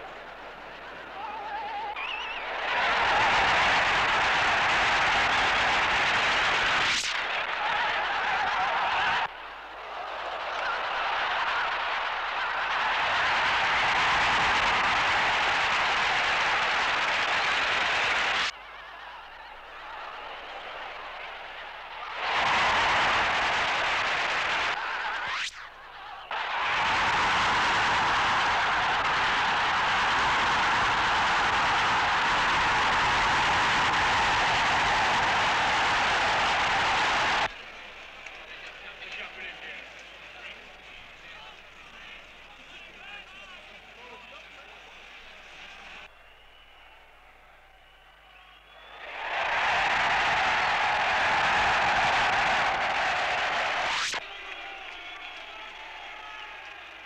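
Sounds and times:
crowd cheering loudly: 0.0s - 57.0s.

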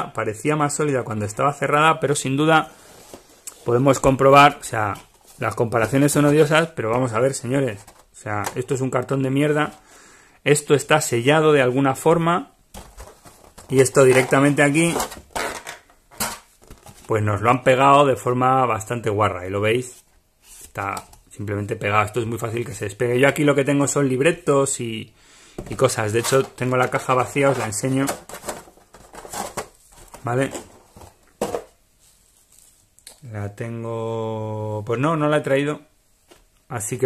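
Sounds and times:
faint handling: 2.5s - 9.9s, 12.7s - 17.4s, 25.6s - 33.2s
plastic tray rustling and scraping: 2.6s - 8.8s, 12.8s - 17.3s, 25.6s - 32.8s
plastic tray knocking into box: 30.5s - 31.8s.

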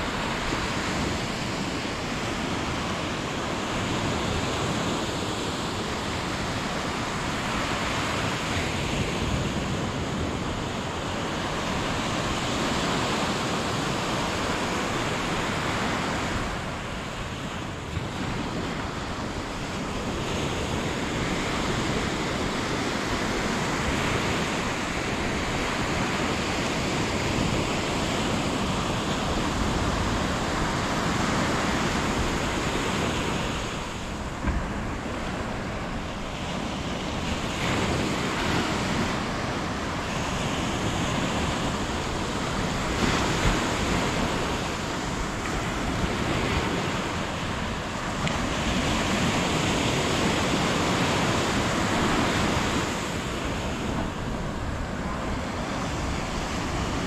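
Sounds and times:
surf washing up a beach: 0.0s - 57.0s
wind rumbling on microphone: 0.0s - 57.0s.

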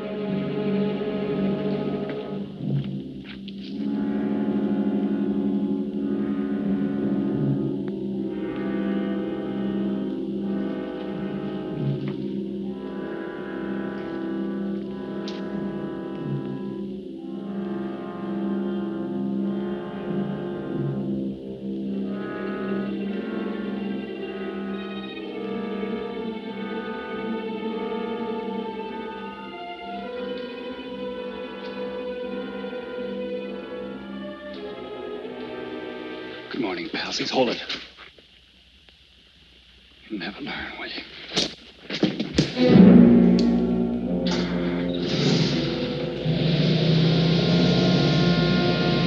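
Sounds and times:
tense repeating pulse: 0.0s - 23.4s, 42.5s - 49.0s
orchestral brass and string chords: 0.0s - 37.1s, 42.6s - 49.0s.

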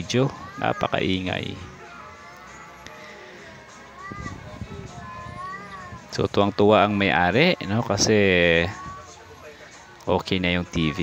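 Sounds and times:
gliding high melody: 0.7s - 9.5s.

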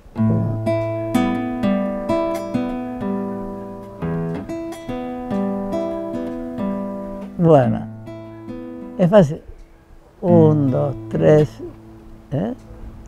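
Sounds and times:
classical guitar fingerstyle: 0.0s - 13.0s.

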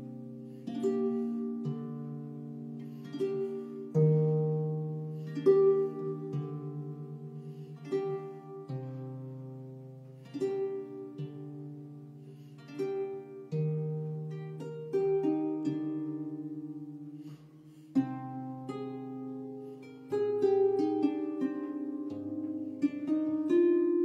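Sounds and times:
harp playing slow chords: 0.0s - 24.0s.

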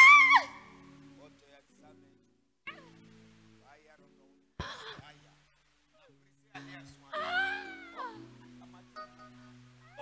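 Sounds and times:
woman wailing: 0.0s - 0.7s, 7.1s - 8.3s
background music chords: 0.0s - 10.0s.

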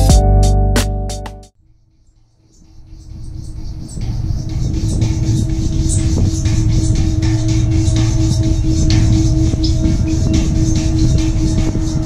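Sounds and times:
gong humming drone: 4.0s - 12.0s.

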